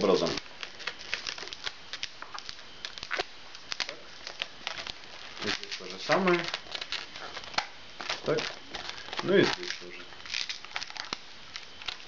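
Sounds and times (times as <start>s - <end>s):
balloons rubbing and creaking: 4.6s - 7.5s.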